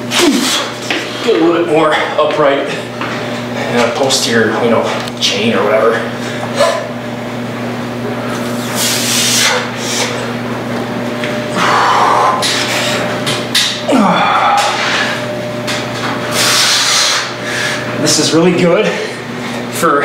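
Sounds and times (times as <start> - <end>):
steady low hum: 0.0 - 20.0
man grunting: 0.1 - 0.7, 11.5 - 12.6, 13.8 - 15.1
man breathing hard: 11.5 - 13.0, 16.3 - 17.9.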